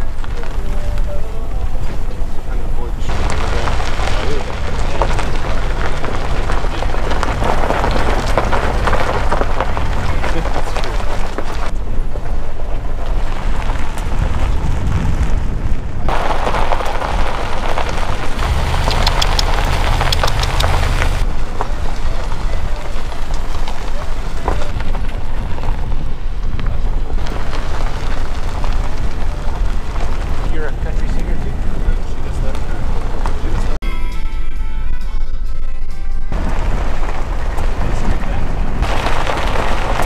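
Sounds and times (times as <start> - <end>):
tyre noise on gravel road: 0.0 - 33.8, 36.3 - 40.0
wind buffeting microphone: 0.0 - 33.8, 36.3 - 40.0
small sharp ticks: 18.4 - 21.2.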